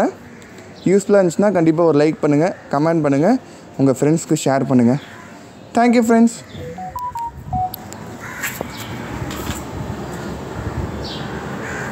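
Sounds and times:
steady background noise: 0.0 - 11.9
phone notification beeps: 6.6 - 7.9.

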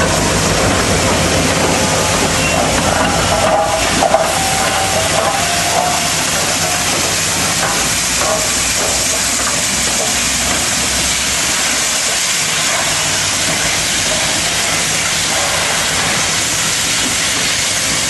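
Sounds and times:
steam locomotive hissing: 0.0 - 18.0.

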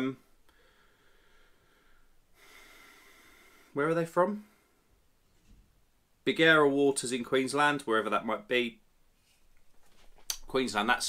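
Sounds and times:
faint breath through nose: 0.5 - 3.8.

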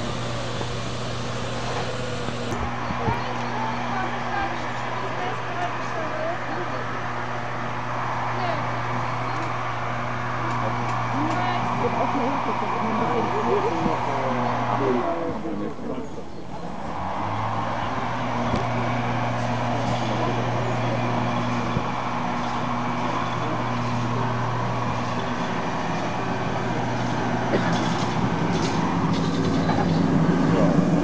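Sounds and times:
rail and rack noise: 0.0 - 31.0
railcar motor hum: 0.0 - 31.0.

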